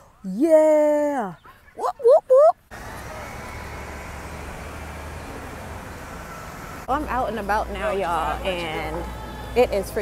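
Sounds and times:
low rumble of traffic: 0.2 - 10.0.

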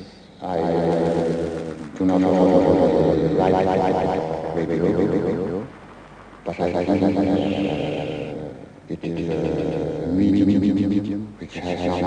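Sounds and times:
stretched man's voice drone: 0.0 - 12.0.

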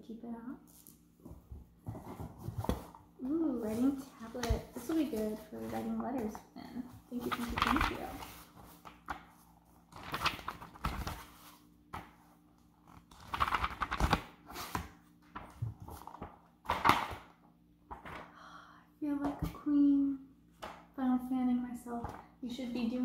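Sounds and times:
cardboard and paper rustling: 1.3 - 17.2
person speaking: 3.2 - 8.4.

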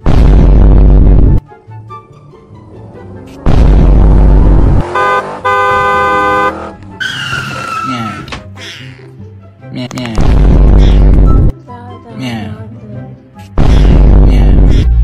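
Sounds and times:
loud booming burst: 0.0 - 1.4, 3.4 - 4.8
background music: 1.4 - 15.0
car horn honk: 4.8 - 7.9.

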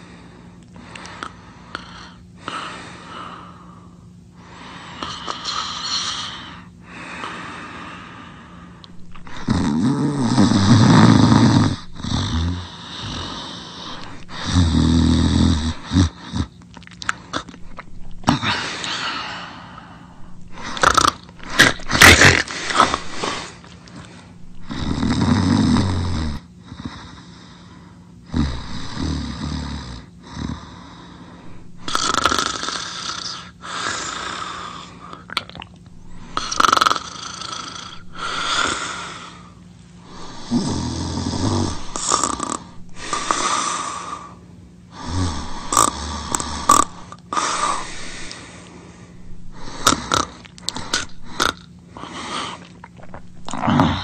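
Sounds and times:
loud snoring: 9.1 - 16.5, 20.4 - 23.5, 24.5 - 27.1, 28.3 - 30.7, 31.5 - 33.5, 36.1 - 39.4, 40.1 - 43.9, 45.0 - 48.4, 49.5 - 51.7, 53.4 - 54.0.

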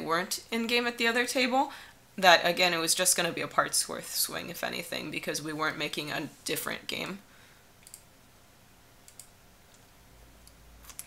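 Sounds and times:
computer mouse clicks: 7.8 - 8.1, 9.0 - 11.0.

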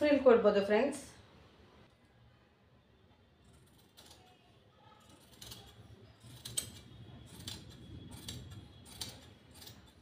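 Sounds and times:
scissors snipping cloth: 3.5 - 4.4, 5.0 - 10.0.

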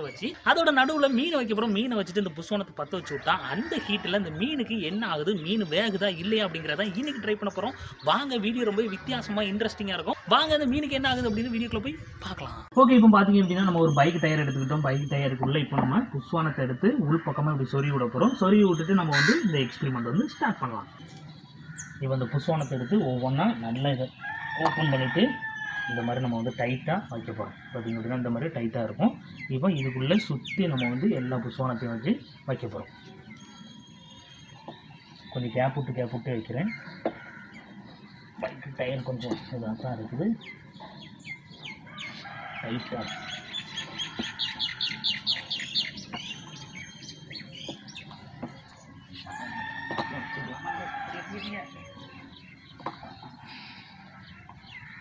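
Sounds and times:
birds chirping: 0.0 - 55.0
man's voice: 12.7 - 20.6.

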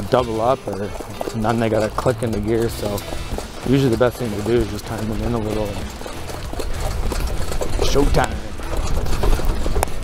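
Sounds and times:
wheels and hooves clattering: 0.0 - 10.0.

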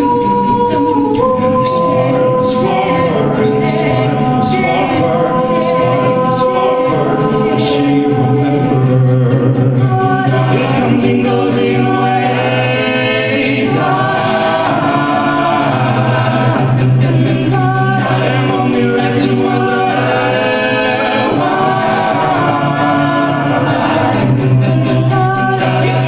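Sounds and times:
male lead voice singing: 0.0 - 26.0
vocal backing harmonies: 0.0 - 26.0.

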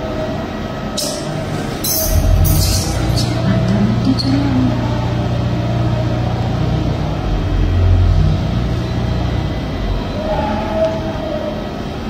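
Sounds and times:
passenger train rumbling: 0.0 - 12.0.

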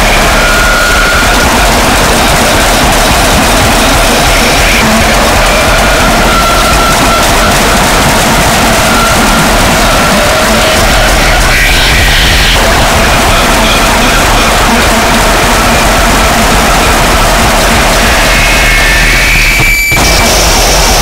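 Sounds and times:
wall of distorted noise: 0.0 - 21.0.

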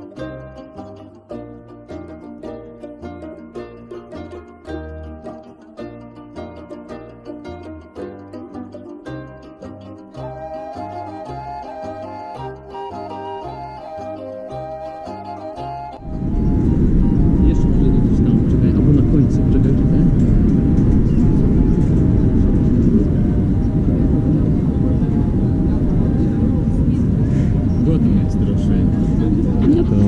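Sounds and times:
wind buffeting microphone: 15.9 - 30.0.

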